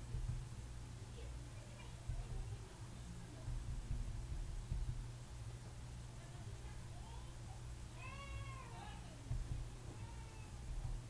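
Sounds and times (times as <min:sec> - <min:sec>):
low thumps: 0:00.0 - 0:00.9, 0:02.0 - 0:02.8, 0:03.4 - 0:05.8, 0:09.2 - 0:10.0, 0:10.6 - 0:11.0
low steady hum: 0:00.0 - 0:11.0.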